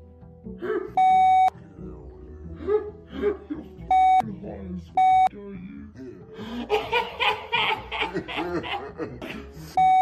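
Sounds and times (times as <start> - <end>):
censor bleep: 5.0 - 5.3.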